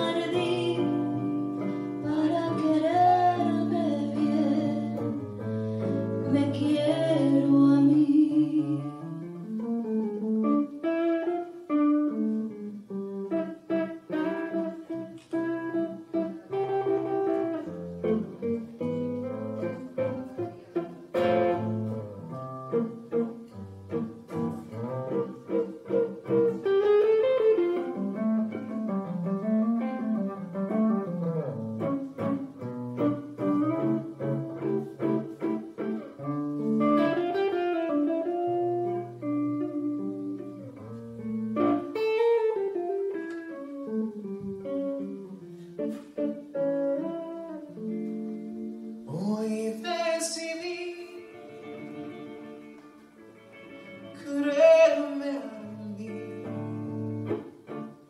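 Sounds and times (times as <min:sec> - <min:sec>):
tango on electric guitar: 0:00.0 - 0:58.0.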